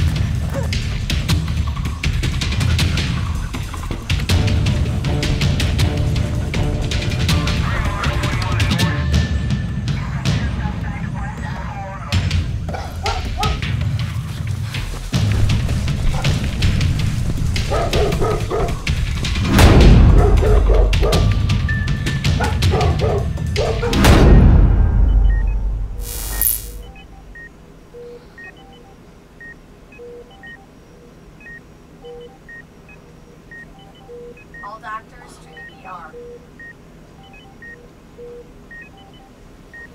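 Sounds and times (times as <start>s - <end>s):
medical equipment beeping: 26.0s - 30.7s.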